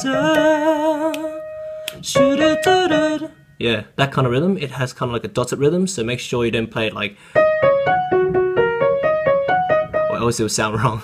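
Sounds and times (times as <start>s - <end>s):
person singing with vibrato: 0.0s - 3.5s
piano tone: 0.0s - 3.8s, 7.3s - 10.7s.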